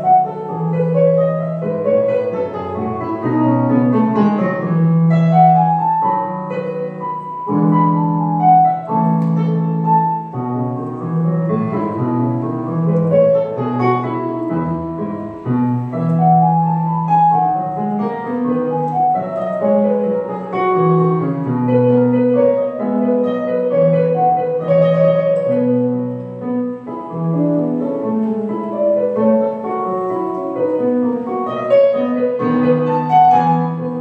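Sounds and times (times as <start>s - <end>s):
electronic keyboard piano melody: 0.0s - 34.0s.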